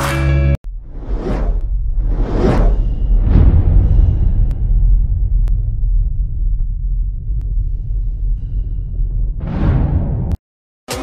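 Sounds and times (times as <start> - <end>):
steady deep rumble: 0.6 - 10.4.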